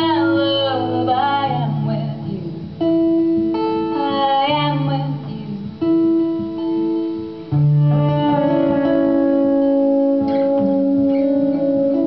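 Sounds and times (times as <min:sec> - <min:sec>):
woman singing: 0:00.0 - 0:06.6
long held instrument notes: 0:00.0 - 0:12.0
strummed acoustic guitar: 0:00.0 - 0:12.0.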